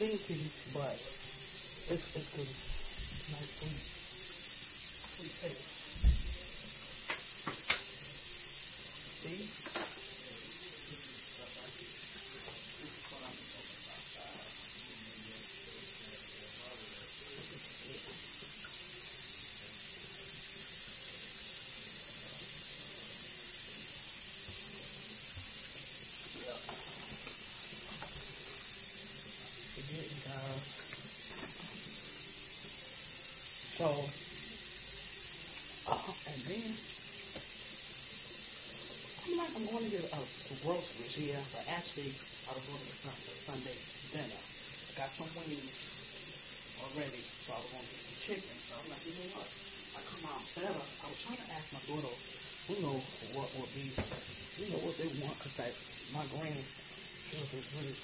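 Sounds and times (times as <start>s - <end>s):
high-pitched background hiss: 0.0s - 58.0s.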